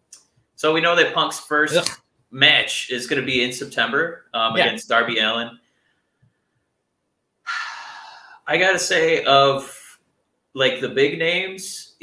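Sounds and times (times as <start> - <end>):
breath into microphone: 7.5 - 8.5.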